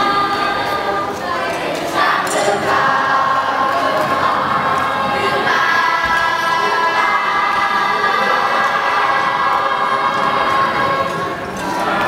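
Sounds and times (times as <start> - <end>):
young voices singing together: 0.0 - 12.0.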